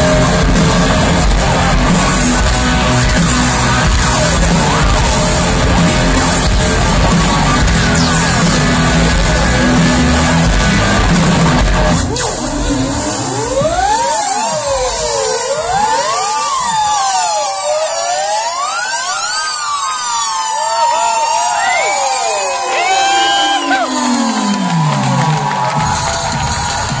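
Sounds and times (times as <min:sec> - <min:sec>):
swooping guitar tones: 0:00.0 - 0:27.0
crowd cheering faintly: 0:20.5 - 0:27.0.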